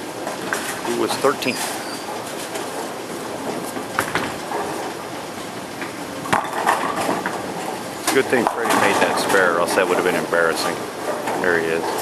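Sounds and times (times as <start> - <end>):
bowling balls rolling: 0.0 - 12.0
bowling pins clattering: 0.0 - 12.0.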